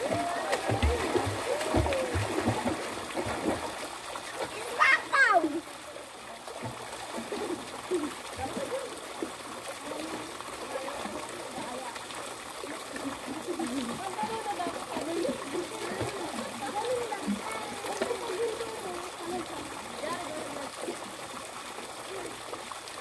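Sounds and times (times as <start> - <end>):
distant chatter of people: 0.0 - 22.6
fountain water splashing: 0.0 - 23.0.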